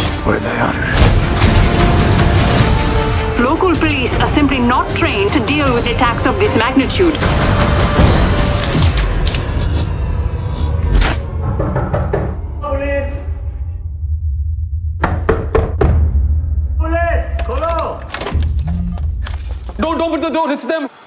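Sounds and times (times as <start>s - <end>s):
deep dramatic score rumble: 0.8s - 17.4s.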